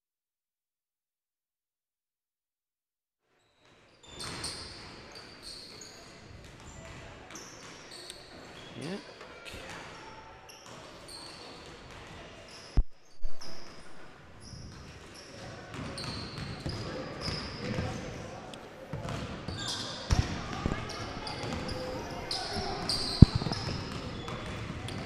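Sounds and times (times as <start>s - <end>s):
sneakers squeaking: 4.0s - 9.0s, 10.5s - 18.2s, 18.9s - 25.0s
basketballs bouncing on hardwood: 15.4s - 17.9s, 18.9s - 21.7s, 22.8s - 25.0s
loud thumps: 23.1s - 23.8s.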